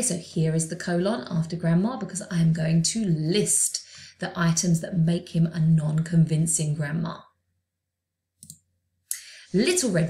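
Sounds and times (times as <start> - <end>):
computer mouse click: 8.4 - 9.2.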